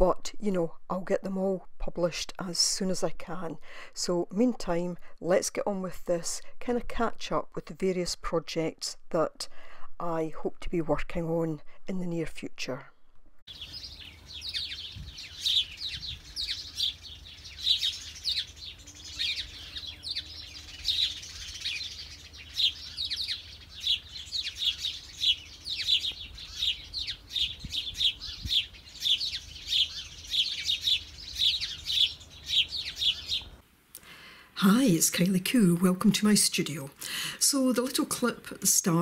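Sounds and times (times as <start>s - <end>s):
songbirds chirping: 12.0s - 39.0s.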